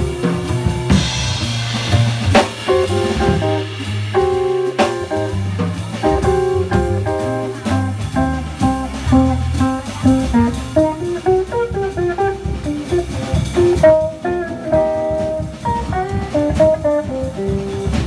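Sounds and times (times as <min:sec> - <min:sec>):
drum kit with cymbals: 0:00.0 - 0:18.0
electric guitar melody: 0:00.0 - 0:18.0
plucked upright bass: 0:00.0 - 0:18.0.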